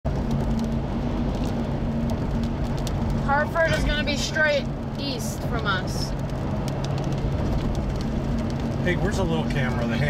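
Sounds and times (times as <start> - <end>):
car engine hum and road rumble: 0.0 - 10.0.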